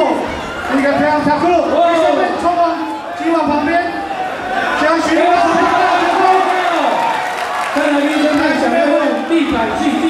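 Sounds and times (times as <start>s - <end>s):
crowd noise: 0.0s - 10.0s
man talking: 4.8s - 7.1s, 7.8s - 10.0s.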